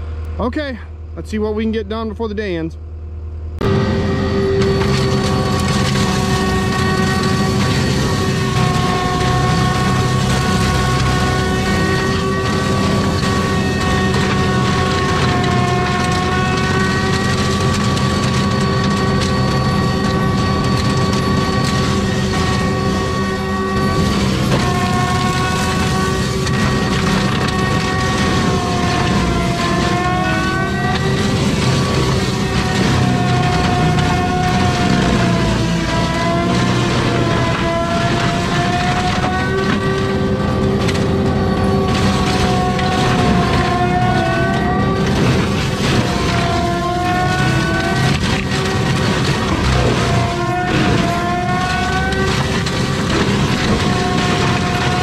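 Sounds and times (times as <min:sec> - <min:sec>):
engine and hydraulic whine: 0:00.0 - 0:55.0
mulcher drum roaring: 0:03.6 - 0:55.0.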